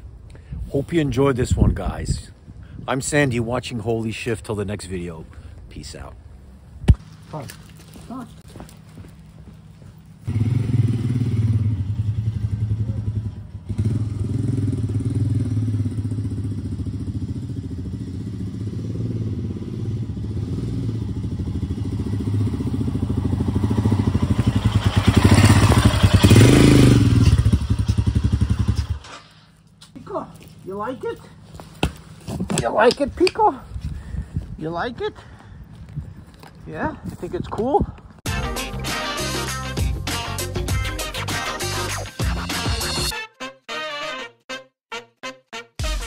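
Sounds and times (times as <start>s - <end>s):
motorcycle engine running: 9.2s - 29.1s.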